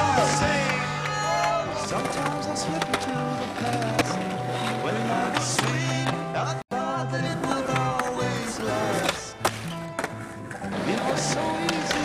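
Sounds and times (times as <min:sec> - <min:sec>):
skateboard rolling: 0:00.0 - 0:06.6, 0:07.2 - 0:12.0
skateboard clacks: 0:00.3 - 0:06.2, 0:07.4 - 0:12.0.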